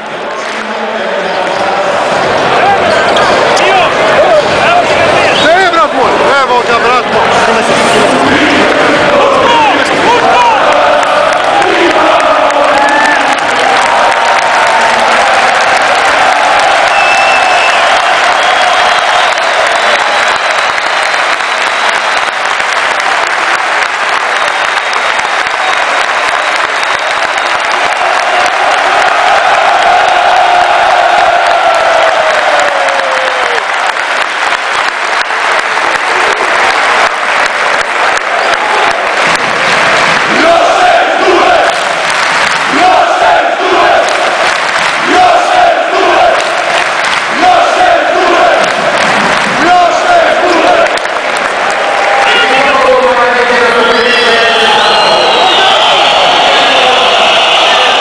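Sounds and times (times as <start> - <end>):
arena crowd cheering and chanting: 0.0 - 58.0.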